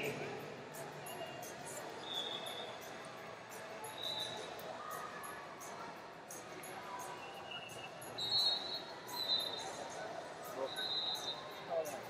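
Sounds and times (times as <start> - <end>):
murmur of distant voices: 0.0 - 12.0.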